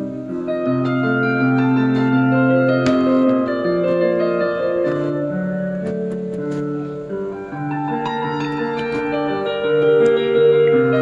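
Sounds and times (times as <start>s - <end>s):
piano music: 0.0s - 11.0s.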